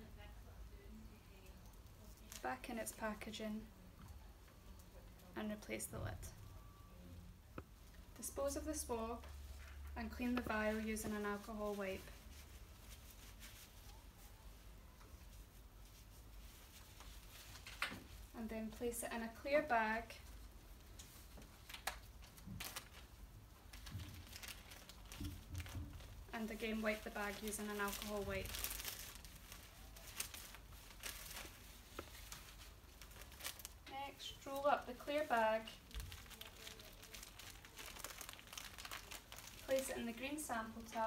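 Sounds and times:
faint low hum: 0.0 - 41.0
plastic bag crinkling: 21.5 - 41.0.

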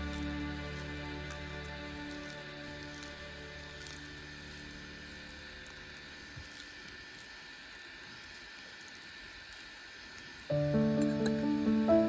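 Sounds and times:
background music: 0.0 - 4.6, 10.5 - 12.0
faint steady hiss: 0.0 - 12.0.

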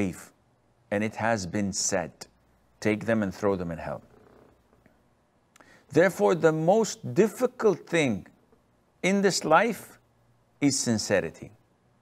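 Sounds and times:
man talking: 0.0 - 4.1, 5.9 - 8.4, 9.0 - 10.0, 10.6 - 11.6
faint room noise: 0.0 - 12.0
soft breath: 5.6 - 5.9.

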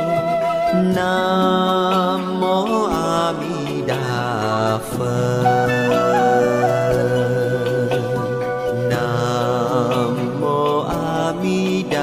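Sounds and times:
steady musical accompaniment: 0.0 - 12.0
chanted sung melody: 0.1 - 12.0.

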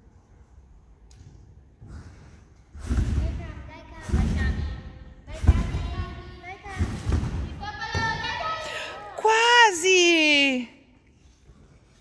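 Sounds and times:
trampoline bed thudding: 2.7 - 8.4
girls' voices: 3.3 - 10.8.

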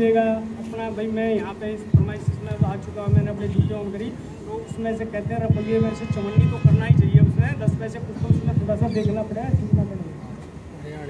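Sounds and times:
steady low hum: 0.0 - 10.8
man speaking into a microphone: 0.0 - 11.0
dull low microphone thumps: 1.4 - 10.4.

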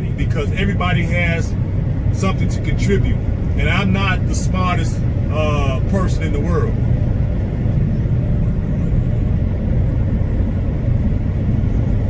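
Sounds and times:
truck engine drone: 0.0 - 12.0
tyre and road noise: 0.0 - 12.0.

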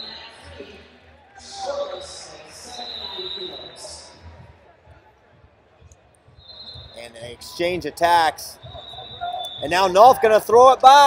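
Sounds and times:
people calling out in a hall: 6.5 - 11.0.

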